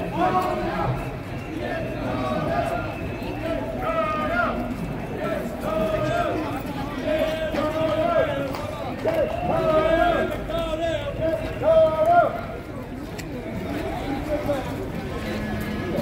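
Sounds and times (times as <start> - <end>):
distant protesters chanting: 0.0 - 16.0.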